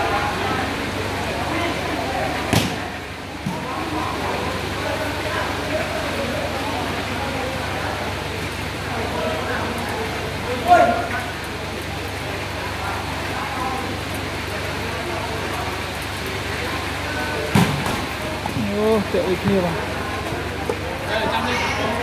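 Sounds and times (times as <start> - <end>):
crowd talking: 0.0 - 22.0
volleyball being struck: 2.5 - 2.8, 17.5 - 18.1.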